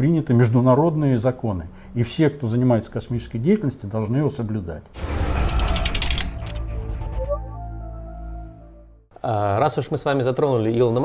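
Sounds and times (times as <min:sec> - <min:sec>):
mechanical ratcheting clicks: 0:05.4 - 0:06.6.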